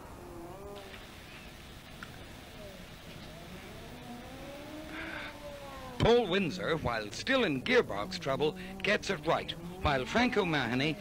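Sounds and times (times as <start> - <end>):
rally car engine revving: 7.4 - 11.0.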